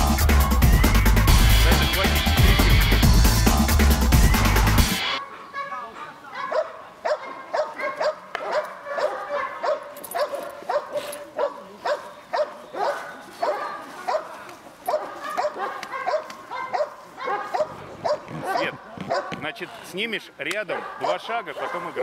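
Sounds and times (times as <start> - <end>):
dog barking: 5.2 - 19.5, 20.7 - 22.0.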